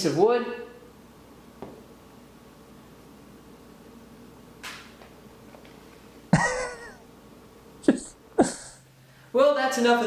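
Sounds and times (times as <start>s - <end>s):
man laughing: 6.4s - 7.0s, 7.8s - 8.8s.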